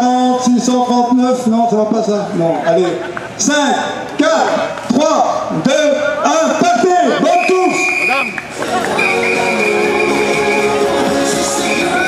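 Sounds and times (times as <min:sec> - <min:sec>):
loud voices calling out: 0:00.0 - 0:12.0
music: 0:08.5 - 0:12.0.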